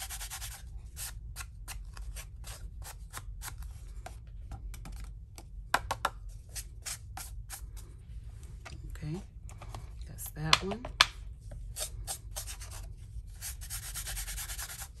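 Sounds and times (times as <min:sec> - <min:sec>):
sponge brushing paper: 0:00.0 - 0:01.2, 0:11.8 - 0:15.0.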